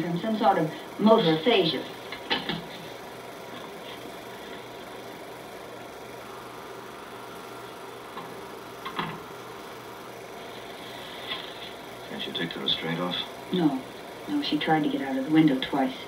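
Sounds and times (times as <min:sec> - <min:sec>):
film projector whirring clatter: 0:00.0 - 0:16.0.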